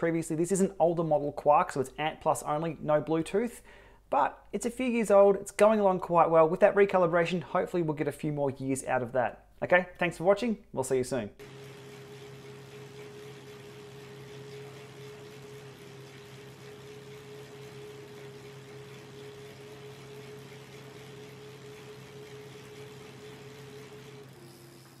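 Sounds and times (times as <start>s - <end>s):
bike trainer whine: 11.4s - 25.0s.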